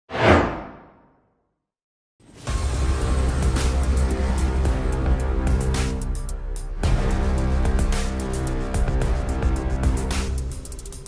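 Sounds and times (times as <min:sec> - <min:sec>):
whoosh sound effect: 0:00.1 - 0:01.1.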